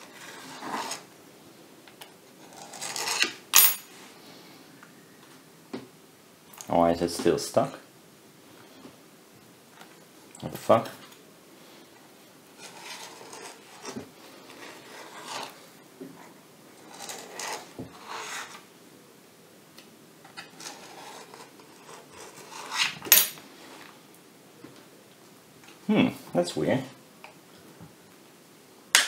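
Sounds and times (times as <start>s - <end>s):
scraping and rubbing of parts: 0.0s - 1.1s, 2.4s - 4.0s, 12.5s - 18.7s, 20.3s - 23.9s.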